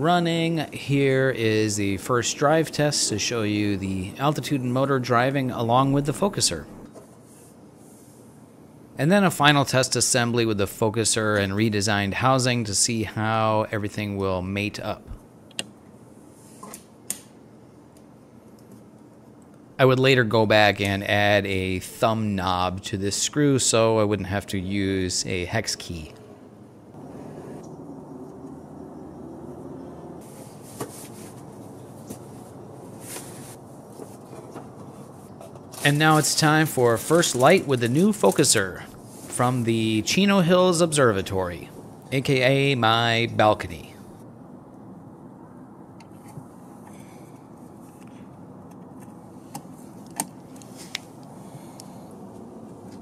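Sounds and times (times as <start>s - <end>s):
low steady background noise: 0.0s - 53.0s
outdoor background hum: 0.0s - 53.0s.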